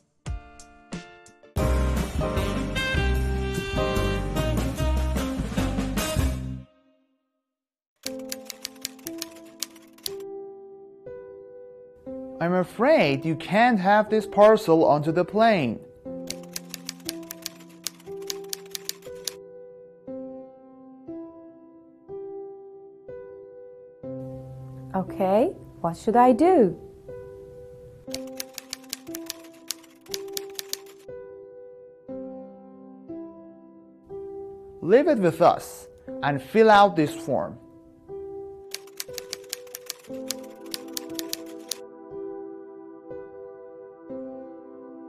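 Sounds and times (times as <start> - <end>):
typewriter keys clicking: 8.0 - 10.2, 16.3 - 19.4, 28.1 - 31.0, 38.7 - 41.8
soft background music: 8.0 - 45.0.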